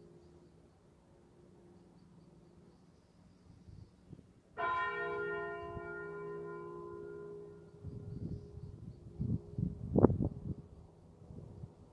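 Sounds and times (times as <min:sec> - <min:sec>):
church bell stroke: 0:04.6 - 0:07.7.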